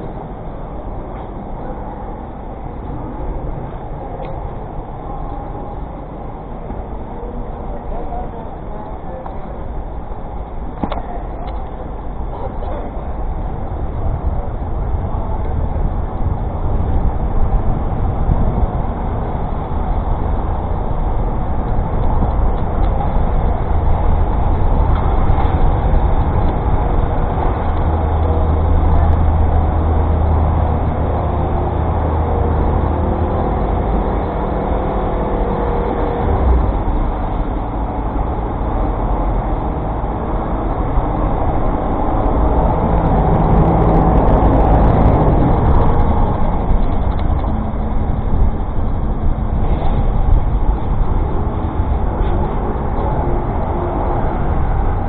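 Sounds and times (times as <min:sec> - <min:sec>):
city street traffic: 0:00.0 - 0:55.0
nearby vehicle engines: 0:00.0 - 0:55.0.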